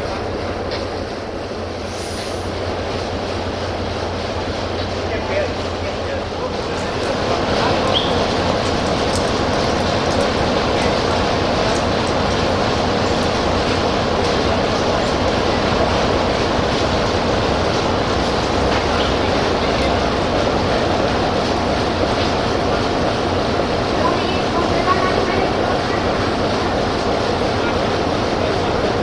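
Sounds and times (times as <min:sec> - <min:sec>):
diesel locomotive engine running: 0:00.0 - 0:29.0.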